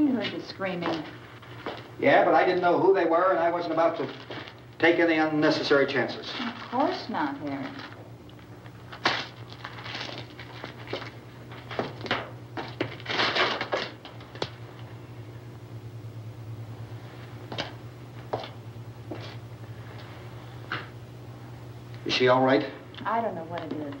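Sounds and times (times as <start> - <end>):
film soundtrack hum: 0.0 - 24.0.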